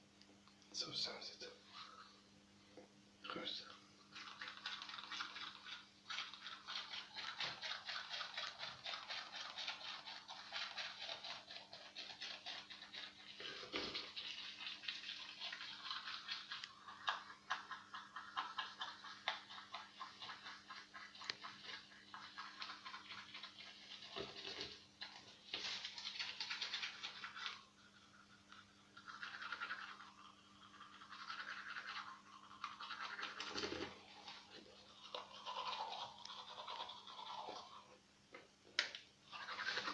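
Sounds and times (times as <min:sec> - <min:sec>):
toothbrush scrubbing teeth: 0:03.3 - 0:38.0, 0:39.2 - 0:39.9.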